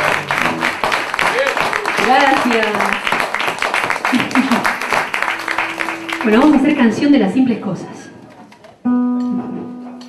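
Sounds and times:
classical guitar chord ringing: 5.2s - 7.1s, 8.9s - 10.0s.

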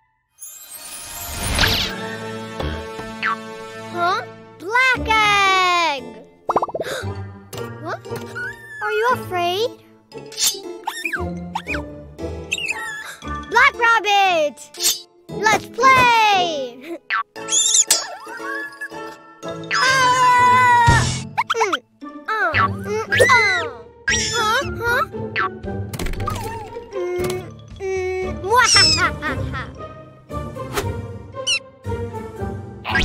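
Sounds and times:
light children's music: 0.3s - 33.0s
cartoon popping sound effects: 6.5s - 7.0s, 17.1s - 18.2s, 22.5s - 24.7s, 26.2s - 27.4s, 28.6s - 29.1s
cartoon meow-like cry: 19.8s - 21.2s.

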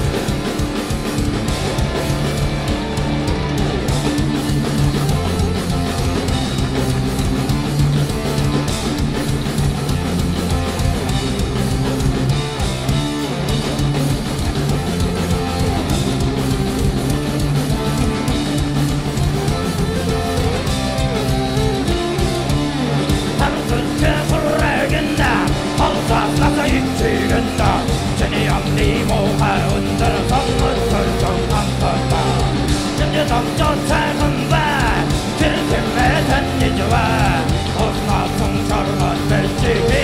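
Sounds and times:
bass: 0.0s - 40.0s
drum kit: 0.0s - 40.0s
electric guitars: 0.0s - 40.0s.

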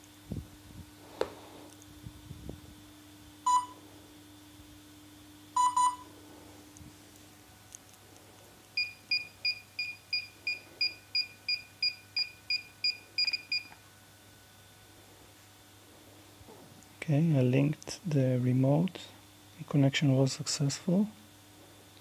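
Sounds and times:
drone controller beeps: 3.4s - 3.8s, 5.6s - 6.1s, 8.8s - 13.7s.

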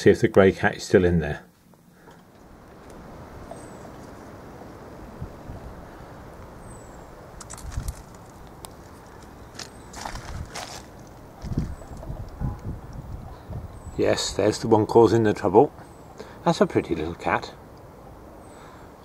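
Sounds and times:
low background noise: 0.0s - 19.0s
scrapes: 7.4s - 11.8s
footsteps and rustling: 7.4s - 12.4s.

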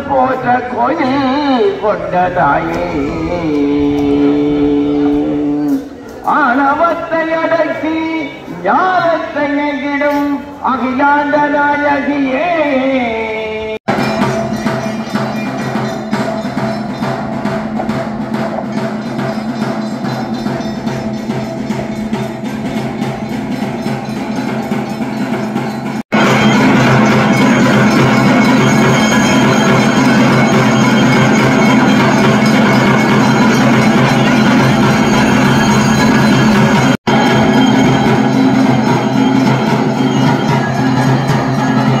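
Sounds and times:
temple bells ringing rapidly: 0.0s - 11.9s, 13.9s - 42.0s
percussion: 0.0s - 13.1s, 13.8s - 42.0s.

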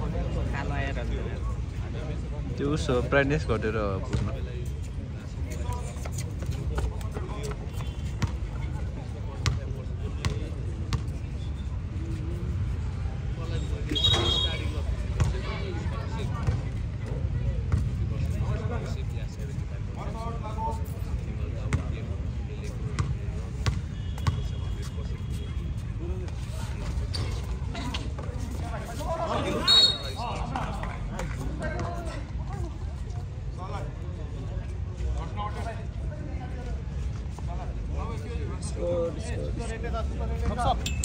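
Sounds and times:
basketball bouncing on court: 9.4s - 11.2s, 23.0s - 24.5s.

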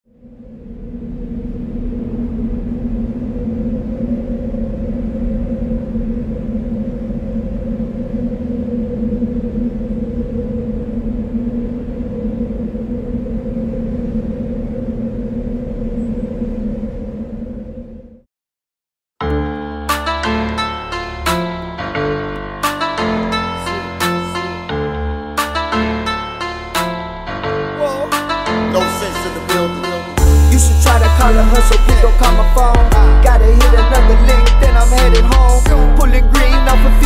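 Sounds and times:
low rumbling drone: 0.0s - 18.3s, 19.3s - 37.0s.

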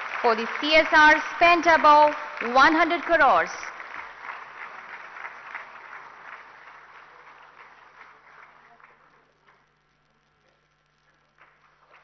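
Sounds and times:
audience applause: 0.0s - 12.0s.

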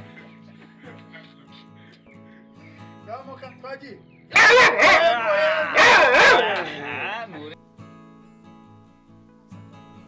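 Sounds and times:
dog barking loudly: 4.3s - 7.1s.

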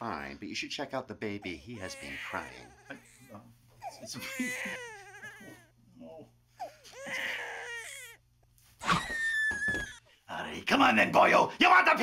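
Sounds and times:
newborn baby crying: 1.4s - 5.8s, 6.5s - 10.0s.

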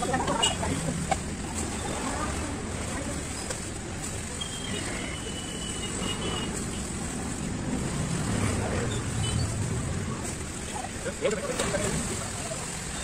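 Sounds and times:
street background rumble: 0.0s - 13.0s.

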